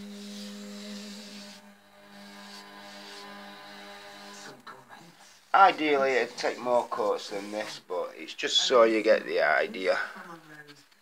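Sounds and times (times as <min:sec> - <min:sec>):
paintbrush brushing on card: 0:00.2 - 0:04.6, 0:05.5 - 0:08.0.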